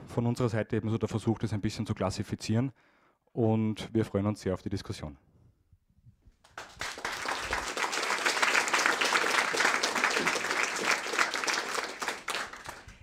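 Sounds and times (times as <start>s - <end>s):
audience applauding: 6.5s - 13.0s.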